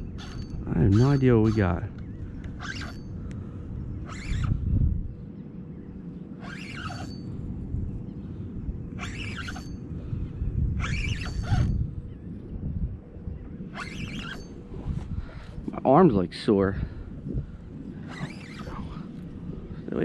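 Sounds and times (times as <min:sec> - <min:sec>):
spinning reel whirring: 0:00.0 - 0:01.9, 0:02.6 - 0:03.2, 0:04.0 - 0:04.7, 0:06.4 - 0:07.4, 0:09.0 - 0:09.8, 0:10.8 - 0:11.8, 0:13.7 - 0:14.6, 0:18.0 - 0:19.3
steady low rumble: 0:00.0 - 0:06.4, 0:07.1 - 0:20.0.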